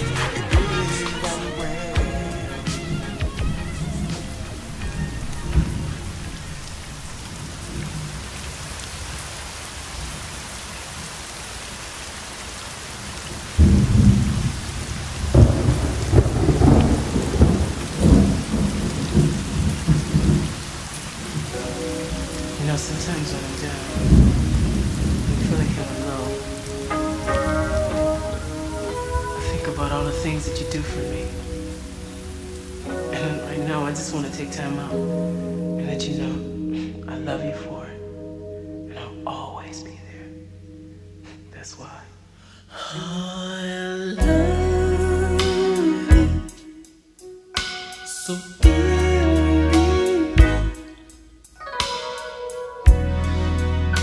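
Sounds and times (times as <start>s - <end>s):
thunder rumbling: 0.0s - 10.8s, 12.8s - 41.2s
steady rain: 0.0s - 42.1s
soft pitched music notes: 21.2s - 42.4s, 44.2s - 54.0s.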